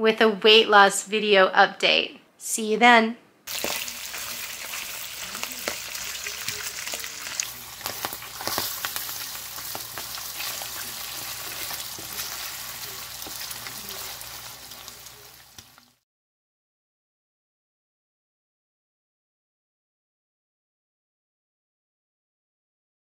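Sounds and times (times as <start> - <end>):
fat sizzling and popping in a pan: 3.5 - 16.0.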